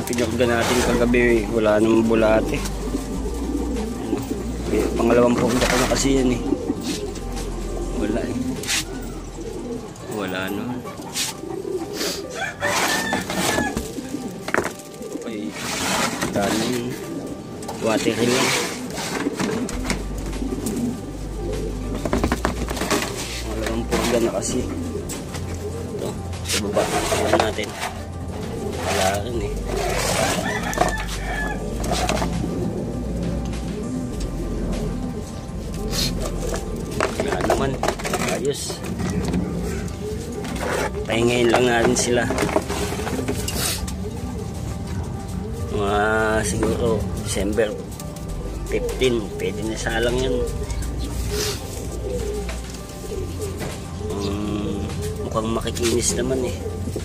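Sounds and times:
birds calling: 0.0s - 57.0s
music playing: 0.0s - 57.0s
pigeons cooing: 0.0s - 57.0s.

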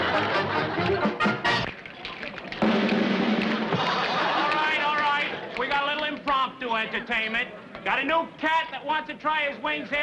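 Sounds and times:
band music with drums: 0.0s - 1.8s, 2.5s - 4.7s
sharp drum strikes: 2.6s - 3.9s.

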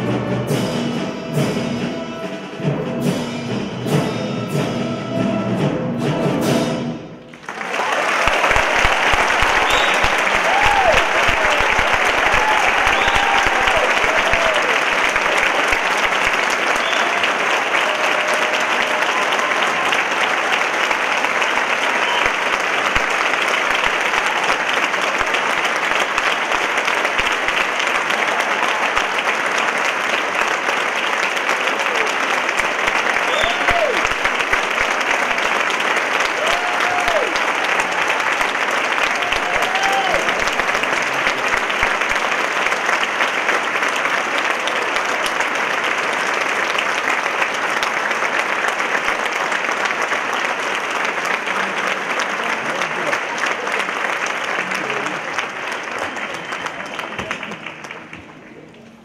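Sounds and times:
audience applauding: 7.3s - 59.0s.

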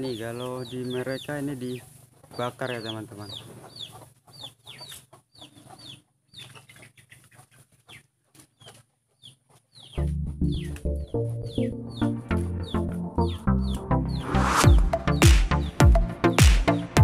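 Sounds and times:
birds chirping: 0.0s - 17.0s
background music: 9.9s - 17.0s.

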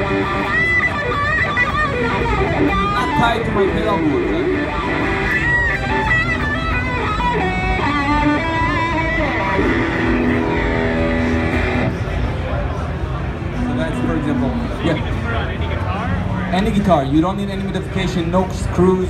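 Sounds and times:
electric guitar with wah effect: 0.0s - 15.3s.

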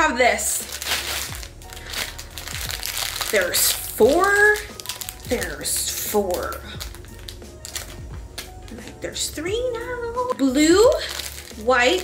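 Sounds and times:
plastic bags crinkling: 0.4s - 12.0s.

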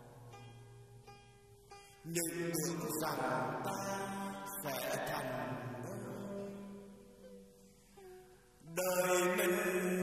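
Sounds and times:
instrumental music: 0.0s - 8.9s
person chanting melodically: 2.0s - 7.4s, 8.6s - 10.0s.

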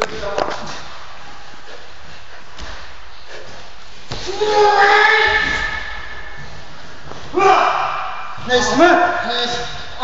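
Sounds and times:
room noise: 0.0s - 10.0s.

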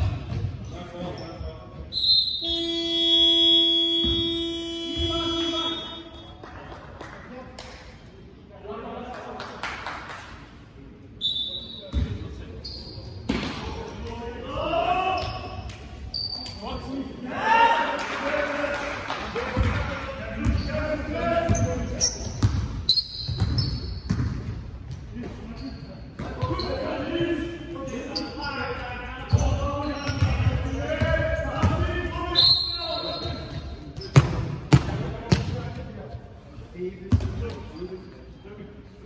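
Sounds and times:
players calling out: 2.4s - 6.3s
shoes squeaking on floor: 11.2s - 13.3s, 15.2s - 16.6s, 21.5s - 24.2s, 25.4s - 27.1s, 27.8s - 30.8s, 32.4s - 34.4s
basketball bouncing on court: 22.3s - 25.0s, 34.0s - 35.6s.

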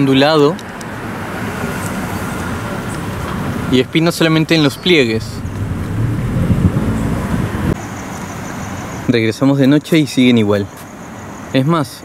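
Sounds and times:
road traffic rumble: 0.0s - 12.0s
vehicle passing close by: 1.1s - 8.8s.

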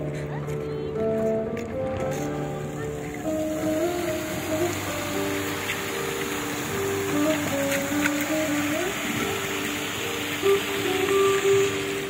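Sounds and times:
fountain water jets splashing: 0.0s - 12.0s
slow melody over loudspeakers: 0.0s - 12.0s.

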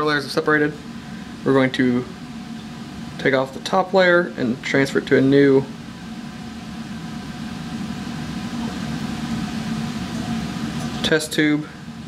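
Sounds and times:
fume hood ventilation rushing: 0.0s - 12.0s.

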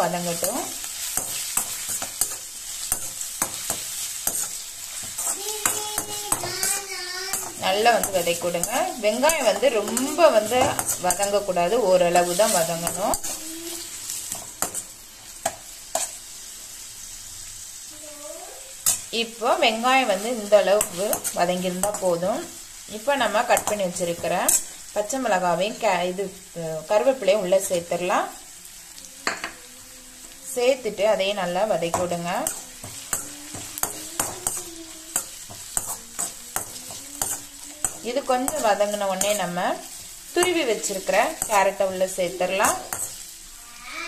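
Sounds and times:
onions sizzling in oil: 0.0s - 44.0s
steel spoon scraping metal pan: 0.1s - 13.4s, 31.9s - 39.6s, 40.4s - 43.2s.

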